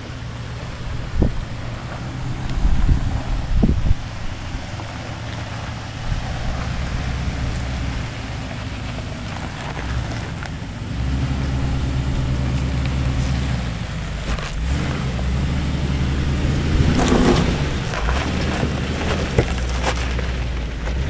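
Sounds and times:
engine running at low speed: 0:00.0 - 0:21.0.

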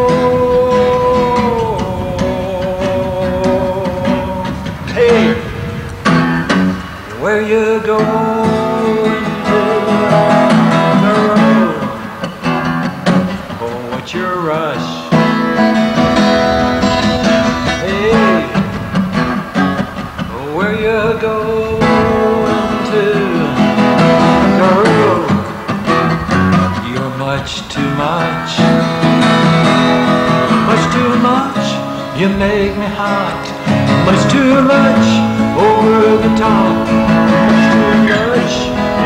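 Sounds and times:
strummed acoustic guitar: 0:00.0 - 0:39.0
sliding melody line: 0:15.1 - 0:27.0, 0:27.8 - 0:39.0.

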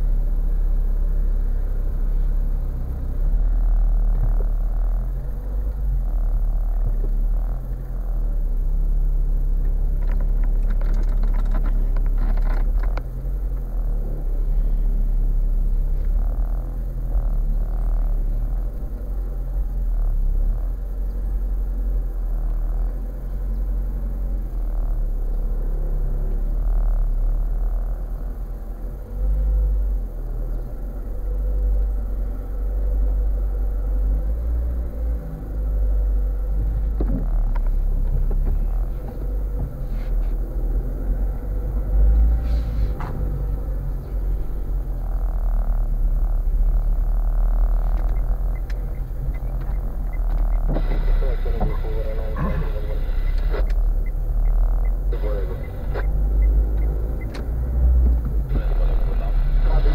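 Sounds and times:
car engine and road rumble: 0:00.0 - 0:59.9
sharp clicks: 0:47.9 - 0:50.8, 0:55.6 - 0:58.4.

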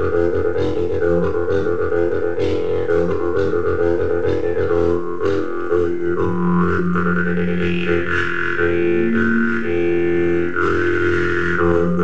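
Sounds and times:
jew's harp drone: 0:00.0 - 0:12.0
overtone melodies: 0:02.8 - 0:12.0.

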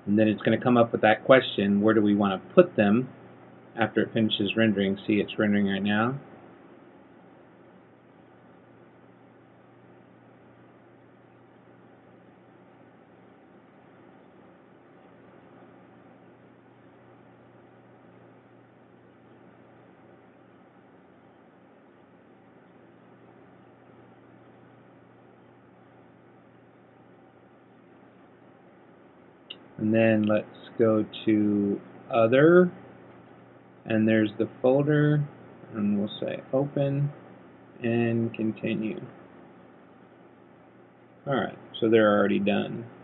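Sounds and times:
faint steady hiss: 0:00.0 - 0:43.0
low hum: 0:00.0 - 0:43.0.

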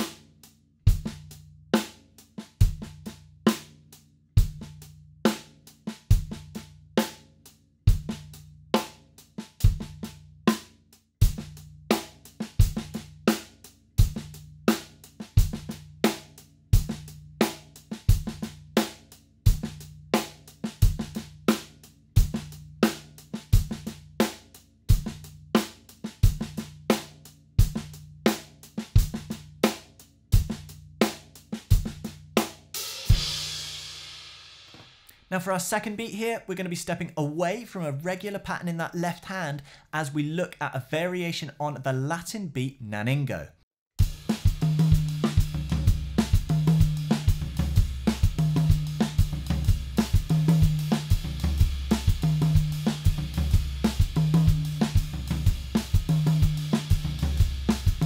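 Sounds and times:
drum kit groove: 0:00.0 - 0:43.4, 0:44.0 - 0:58.0.

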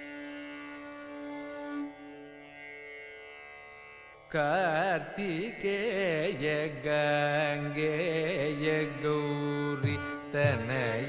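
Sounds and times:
person singing ornamented phrases: 0:04.4 - 0:11.0.

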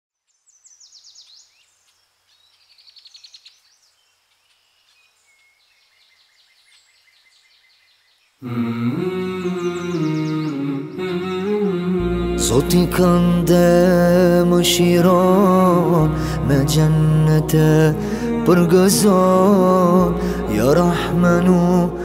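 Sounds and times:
faint birdsong: 0:00.1 - 0:22.0
hummed vocal chords: 0:08.4 - 0:22.0.

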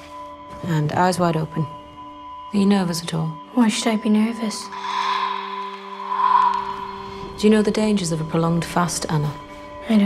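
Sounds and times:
low drone trailer music: 0:03.1 - 0:09.8.

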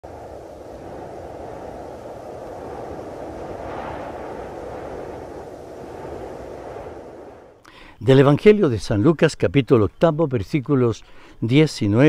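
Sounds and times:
steady rumbling: 0:00.0 - 0:07.6.

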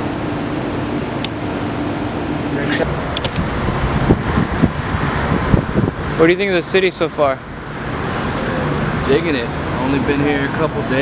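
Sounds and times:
city street traffic noise: 0:00.0 - 0:11.0
wind rumbling on microphone: 0:02.7 - 0:06.6.

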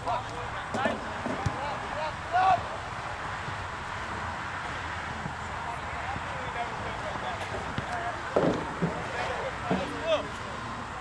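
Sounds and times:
outdoor background noise: 0:00.0 - 0:11.0
soccer players shouting: 0:00.0 - 0:11.0.

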